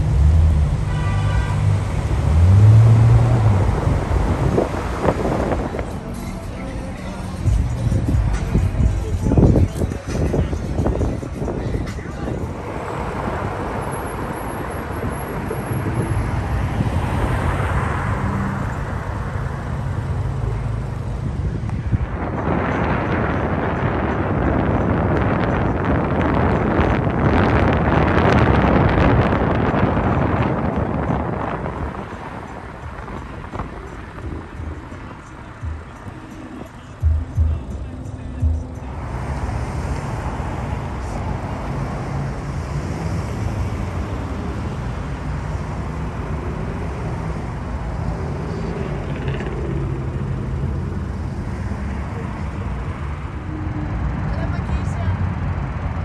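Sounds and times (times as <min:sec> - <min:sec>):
car road and wind noise: 0:00.0 - 0:56.0.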